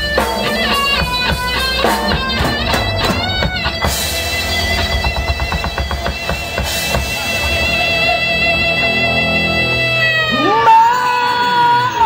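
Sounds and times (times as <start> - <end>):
fast drum fill: 0.0 - 8.0
sustained electric guitar note: 0.0 - 10.5.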